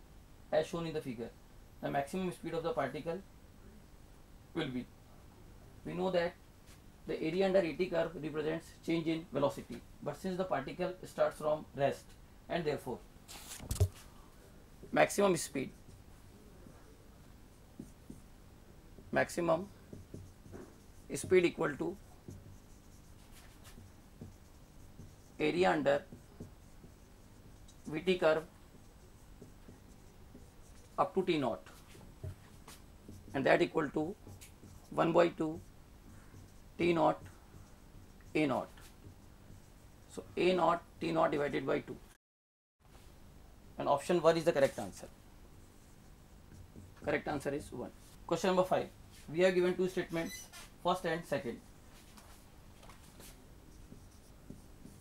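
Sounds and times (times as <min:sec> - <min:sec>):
marker scratching on whiteboard: 0:15.0 - 0:16.9, 0:17.5 - 0:18.3, 0:19.0 - 0:40.9, 0:44.4 - 0:50.7, 0:51.4 - 0:55.0.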